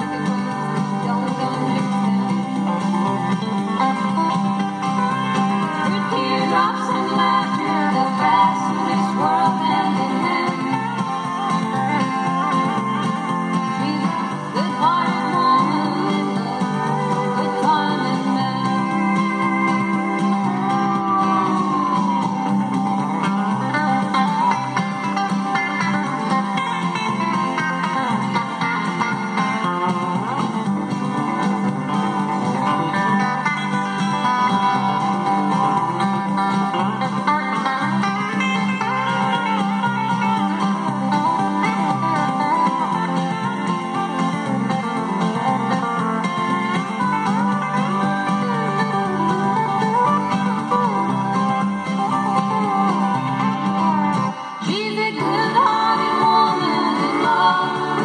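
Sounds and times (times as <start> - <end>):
guitar playing: 0.0 - 58.0
steel guitar: 0.0 - 58.0.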